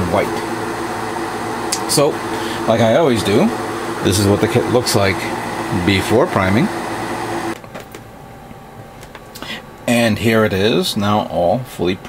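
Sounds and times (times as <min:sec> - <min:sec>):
exhaust fan humming: 0:00.0 - 0:12.0.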